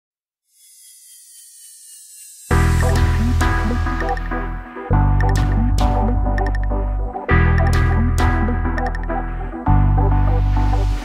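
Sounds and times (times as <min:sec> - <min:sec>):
high shimmering riser effect: 0:00.5 - 0:04.3.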